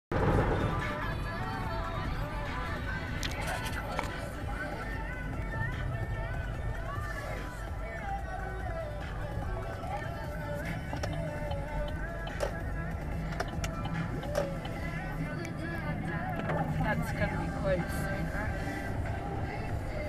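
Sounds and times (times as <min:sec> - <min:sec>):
song on car radio: 0:00.1 - 0:20.0
car driving on wet road: 0:13.1 - 0:20.0.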